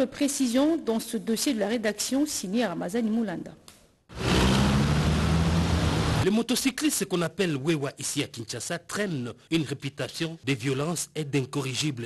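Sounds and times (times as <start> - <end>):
road noise: 4.1 - 6.2
vehicle engines humming: 4.1 - 6.2.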